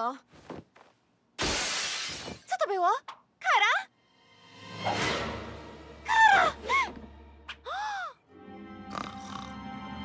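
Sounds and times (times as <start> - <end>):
window smashing: 1.4 - 2.5.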